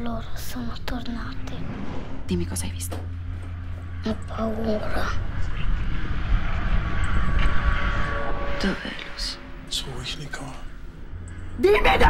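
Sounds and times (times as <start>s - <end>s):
faint steady tones: 0.0s - 12.0s
low rumbling drone: 0.0s - 12.0s.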